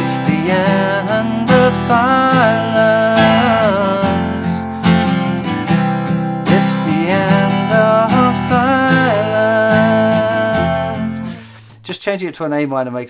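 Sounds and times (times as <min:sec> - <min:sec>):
man singing: 0:00.0 - 0:05.0, 0:06.5 - 0:11.5
acoustic guitar strumming chords: 0:00.0 - 0:11.8.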